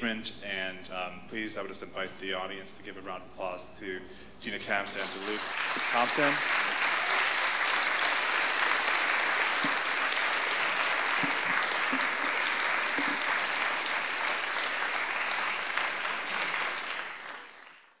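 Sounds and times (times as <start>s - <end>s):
audience applauding: 4.8s - 18.0s.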